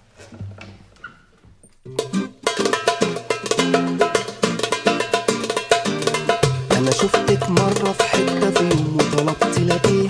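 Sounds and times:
loud music: 1.9 - 10.0.

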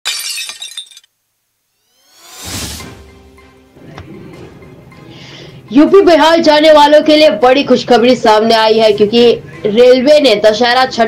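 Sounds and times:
glass shattering crash: 0.0 - 1.1
rising swell: 1.8 - 5.1.

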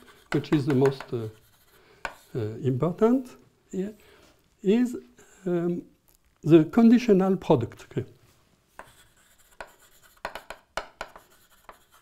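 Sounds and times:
chalk writing on blackboard: 0.0 - 2.6, 8.8 - 12.0.

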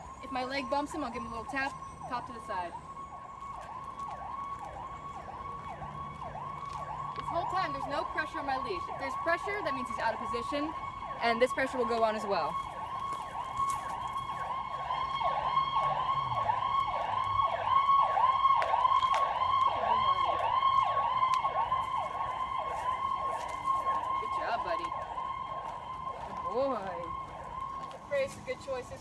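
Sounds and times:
electronic siren yelping: 0.0 - 29.0.

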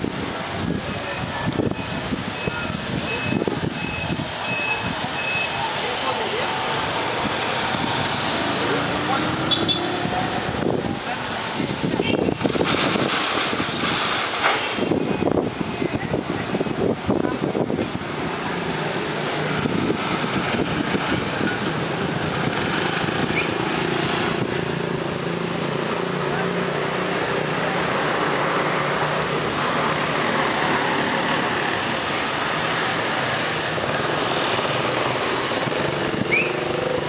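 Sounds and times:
traffic noise of motorbikes: 0.0 - 37.0
voices talking: 0.4 - 12.5.

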